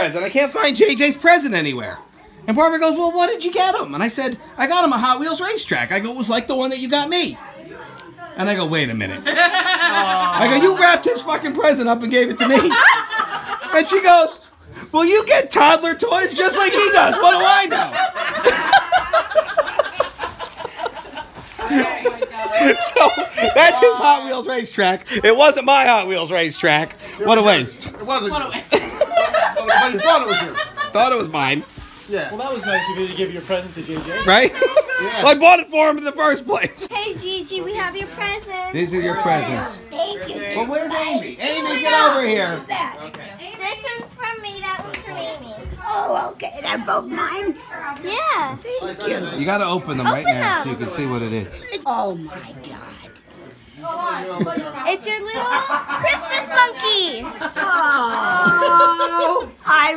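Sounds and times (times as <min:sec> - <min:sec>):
people laughing: 0:09.2 - 0:10.8, 0:12.3 - 0:14.0, 0:16.6 - 0:24.4, 0:28.2 - 0:31.7, 0:34.2 - 0:35.2, 0:54.0 - 0:59.7.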